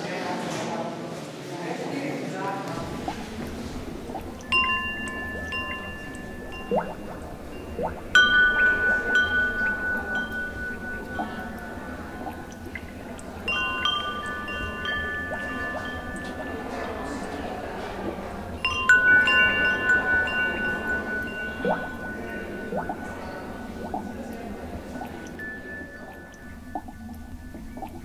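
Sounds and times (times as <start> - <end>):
metal chimes ringing: 4.0 - 28.0.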